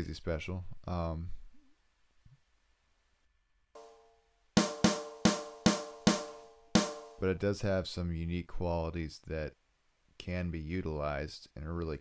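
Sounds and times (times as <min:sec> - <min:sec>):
sharp snare drum hits: 0:03.8 - 0:04.0, 0:04.6 - 0:07.3.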